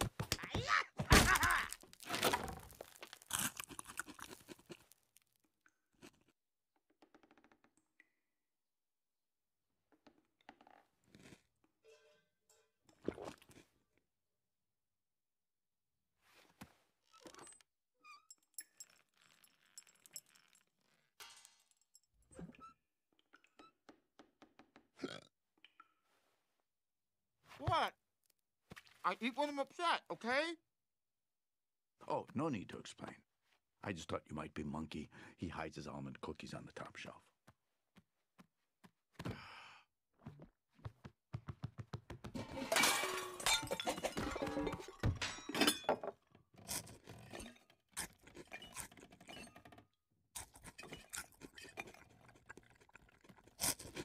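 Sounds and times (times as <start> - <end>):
throaty cartoon vocal noises: 25.0 - 25.3
clinks of wood and crockery: 42.4 - 46.3.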